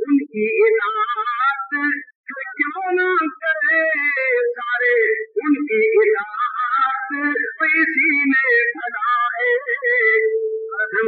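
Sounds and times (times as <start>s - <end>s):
voice chanting melodically: 0.0s - 11.0s.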